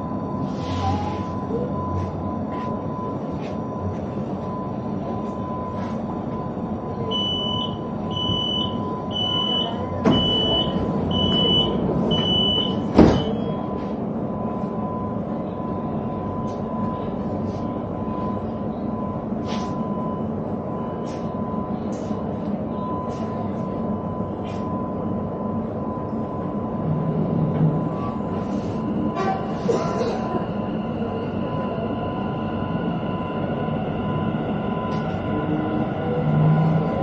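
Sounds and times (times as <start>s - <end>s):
high warning beeps: 0.0s - 26.8s
train equipment hum: 0.0s - 37.0s.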